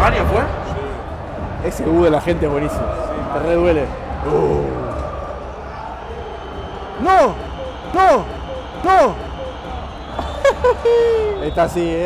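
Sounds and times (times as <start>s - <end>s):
stadium crowd murmur: 0.0s - 12.0s.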